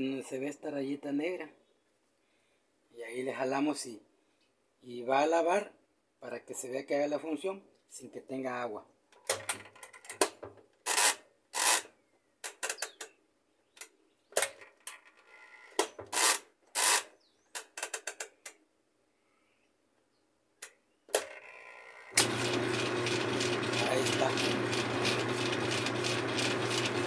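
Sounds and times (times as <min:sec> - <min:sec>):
washing machine motor humming: 0:22.2 - 0:27.0.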